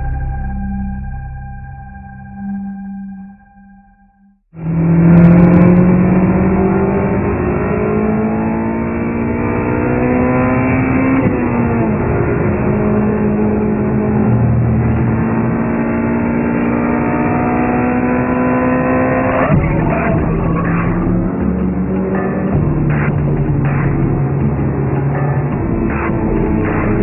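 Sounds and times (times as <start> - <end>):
car engine revving high: 4.6 - 27.0.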